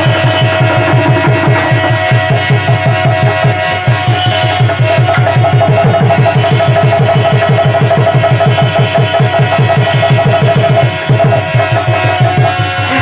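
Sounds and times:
fast hand drum beats: 0:00.0 - 0:13.0.

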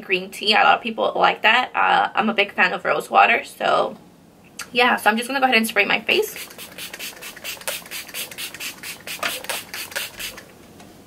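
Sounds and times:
spray bottle hissing sprays: 0:06.3 - 0:10.5.

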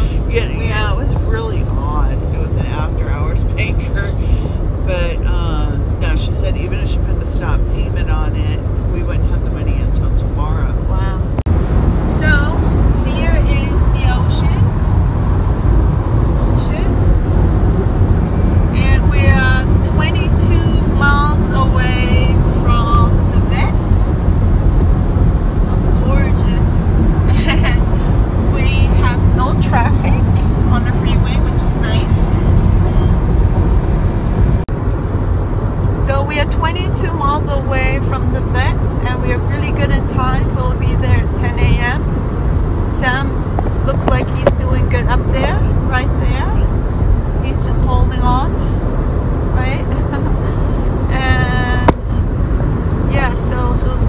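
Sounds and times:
road and engine rumble in car: 0:00.0 - 0:54.0
voices talking: 0:25.7 - 0:33.2, 0:49.5 - 0:52.3, 0:53.1 - 0:54.0.

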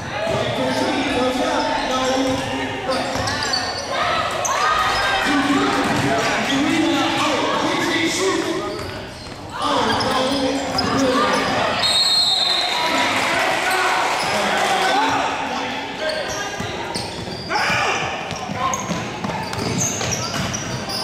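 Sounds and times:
sneakers squeaking: 0:00.0 - 0:13.1, 0:13.7 - 0:14.5, 0:15.9 - 0:21.0
people shouting in echoing hall: 0:12.5 - 0:16.6, 0:17.4 - 0:18.9
basketball bouncing on wooden court: 0:16.6 - 0:21.0.

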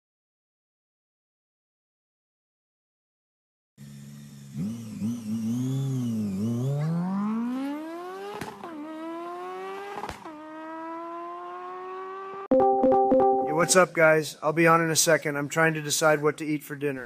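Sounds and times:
car engine revving: 0:03.8 - 0:12.5.

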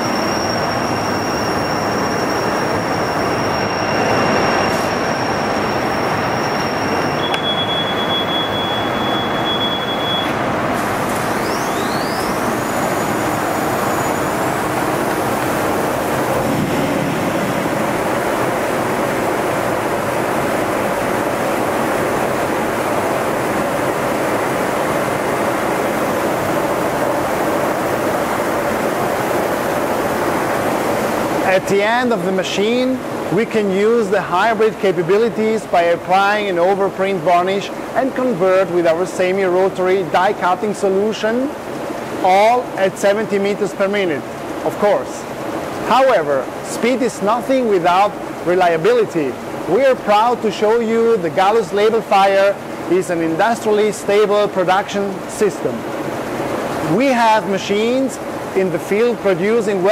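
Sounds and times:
high machine whine: 0:00.0 - 0:38.3.

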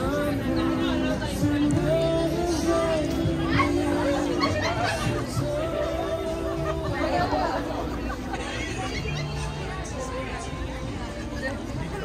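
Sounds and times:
crowd chatter: 0:00.0 - 0:12.0
music with long held notes: 0:00.0 - 0:12.0.

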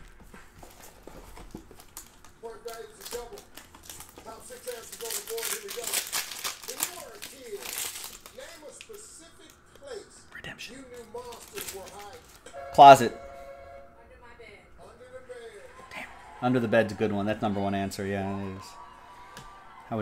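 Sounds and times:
plastic wrap crinkling: 0:00.6 - 0:09.6, 0:10.9 - 0:12.5.

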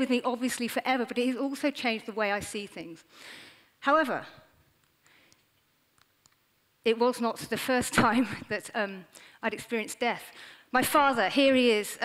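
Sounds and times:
woman talking: 0:00.0 - 0:03.0, 0:03.8 - 0:04.5, 0:06.9 - 0:12.0
faint breath: 0:03.1 - 0:03.7, 0:09.1 - 0:09.4, 0:10.3 - 0:10.7
faint small clicks: 0:04.8 - 0:06.4.

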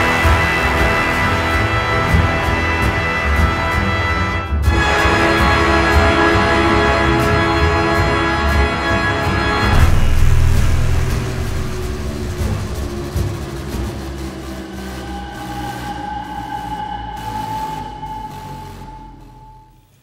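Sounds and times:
eerie sci-fi music: 0:04.7 - 0:19.9
low rumble: 0:09.6 - 0:14.6.

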